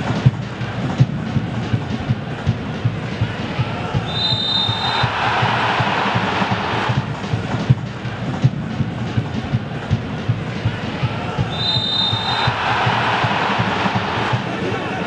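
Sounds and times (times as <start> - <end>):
crowd and player voices: 0.0 - 15.0
drumming in the stands: 0.0 - 15.0
referee's whistle: 4.0 - 5.4, 11.5 - 12.8.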